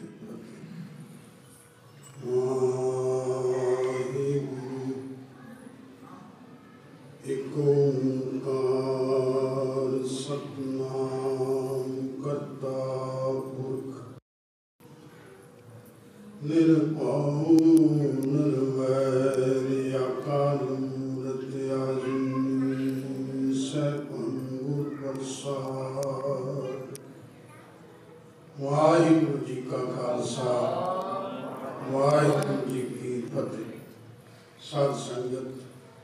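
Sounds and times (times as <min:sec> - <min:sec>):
hymn sung in chant-like melody: 0:02.0 - 0:06.2, 0:07.2 - 0:14.2, 0:16.2 - 0:27.2, 0:28.5 - 0:34.0, 0:34.6 - 0:36.0
person chanting a held note: 0:16.3 - 0:27.0.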